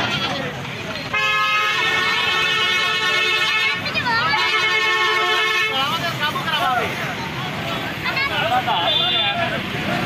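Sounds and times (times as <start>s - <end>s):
vehicle horn blast: 1.1s - 5.9s.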